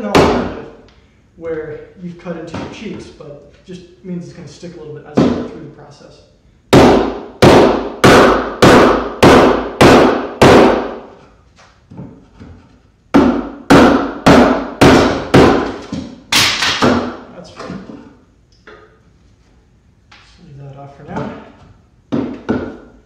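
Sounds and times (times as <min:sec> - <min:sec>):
mallet striking chisel into wood: 0:00.0 - 0:00.6, 0:06.7 - 0:11.0, 0:13.1 - 0:17.2, 0:22.1 - 0:22.9.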